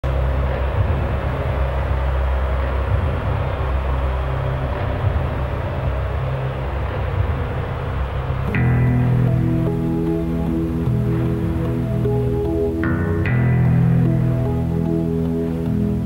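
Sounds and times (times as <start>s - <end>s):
deep industrial rumble: 0.0s - 16.0s.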